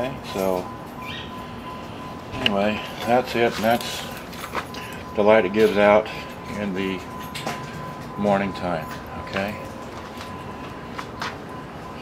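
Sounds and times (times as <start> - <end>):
light footsteps on pavement: 2.4 - 11.6.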